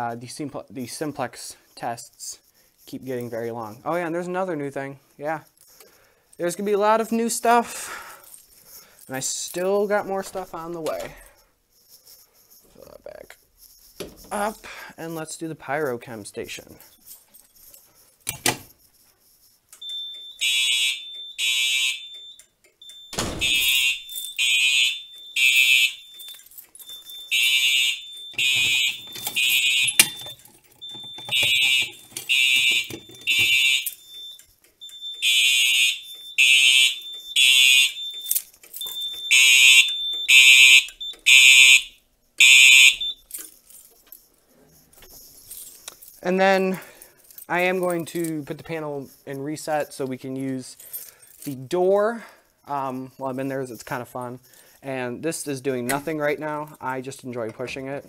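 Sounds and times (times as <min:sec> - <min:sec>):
fire alarm horn blasts: 0:19.8 - 0:43.2
thin steady high tone: 0:25.0 - 0:35.3.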